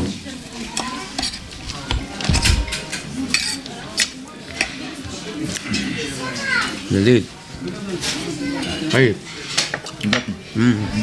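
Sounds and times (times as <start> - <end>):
forks clinking on plates: 0.7 - 4.8, 8.0 - 10.3.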